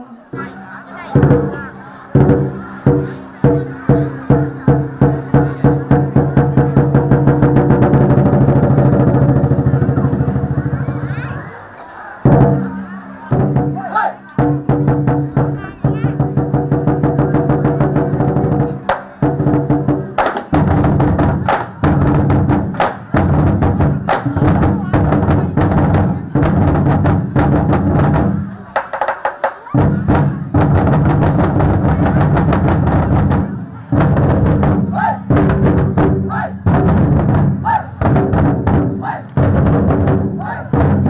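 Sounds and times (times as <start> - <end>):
barrel drums beating: 0.3 - 10.9, 12.2 - 41.0.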